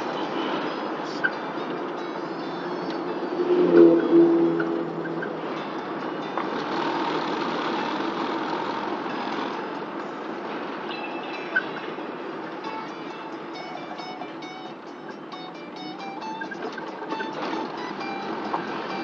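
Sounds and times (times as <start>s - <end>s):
music with plucked notes: 0.0s - 19.0s
road and engine noise in car: 0.0s - 19.0s.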